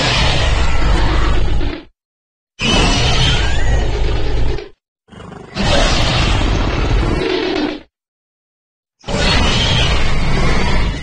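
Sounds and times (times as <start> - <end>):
dragon roar: 0.0 - 1.9, 2.6 - 7.9, 9.0 - 11.0.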